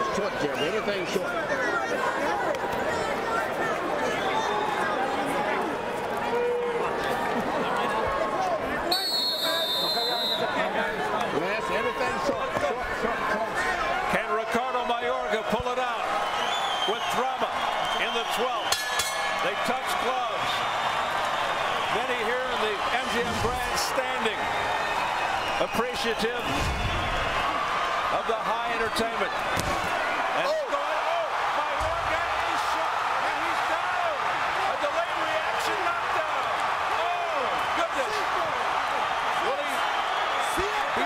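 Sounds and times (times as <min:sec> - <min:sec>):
crowd shouting and cheering: 0:00.0 - 0:41.0
boxing ring bell: 0:18.7 - 0:19.5.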